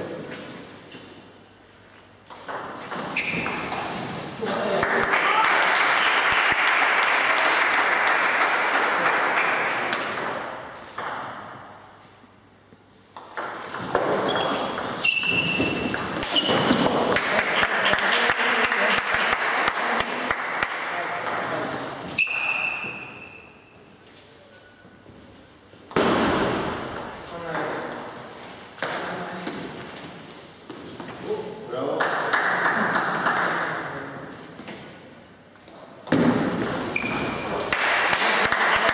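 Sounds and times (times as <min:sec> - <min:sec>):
small audience applauding: 0:04.6 - 0:10.0, 0:17.1 - 0:21.0, 0:32.0 - 0:33.6, 0:37.6 - 0:38.9.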